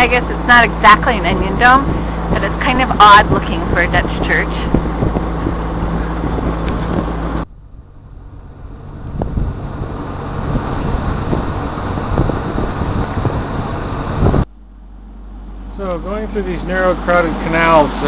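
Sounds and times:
wind buffeting microphone: 0:00.0 - 0:14.5
boat engine humming: 0:00.0 - 0:18.0.

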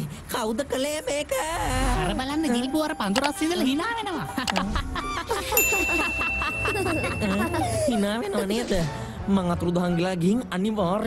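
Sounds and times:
notification bell ding: 0:05.6 - 0:08.0.

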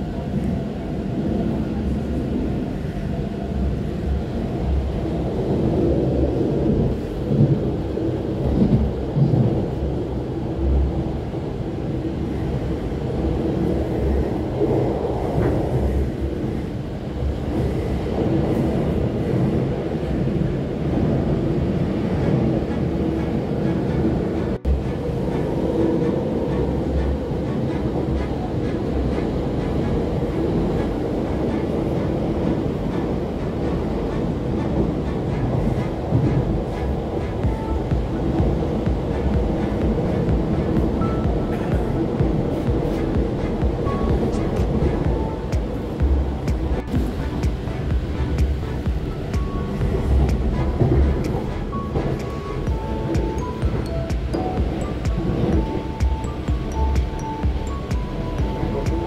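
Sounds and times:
train wheels rumbling on track: 0:00.0 - 0:59.0.

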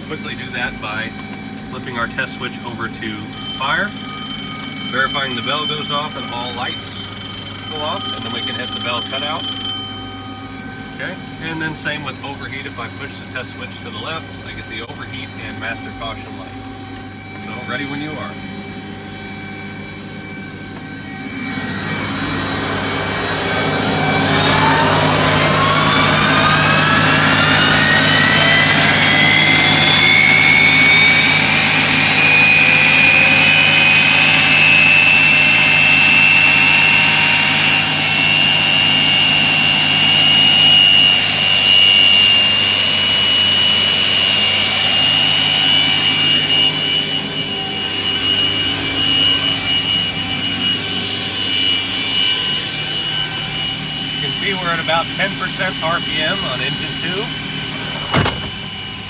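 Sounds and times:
jet engine whine: 0:00.0 - 0:59.0.

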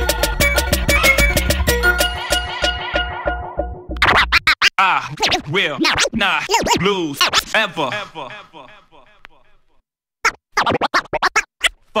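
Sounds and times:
turntable scratching: 0:04.0 - 0:08.5, 0:10.2 - 0:12.0.

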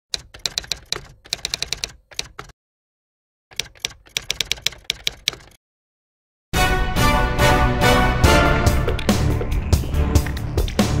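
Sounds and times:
typewriter keys clacking: 0:00.1 - 0:02.5, 0:03.5 - 0:05.6.

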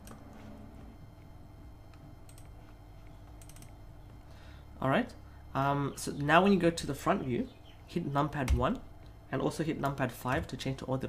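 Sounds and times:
low steady hum: 0:00.0 - 0:11.0
computer clicks: 0:01.9 - 0:03.8
man talking: 0:04.8 - 0:11.0.

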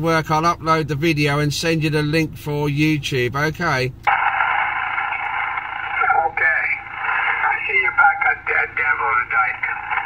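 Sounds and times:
radio speaker hiss: 0:04.1 - 0:10.0.

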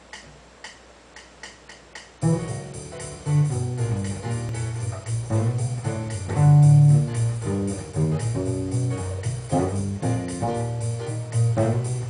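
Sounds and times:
sharp count-in ticks: 0:00.1 - 0:06.4.

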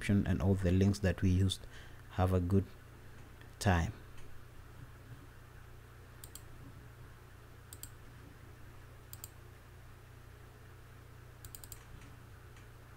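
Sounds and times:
steady low hum: 0:00.0 - 0:12.9.

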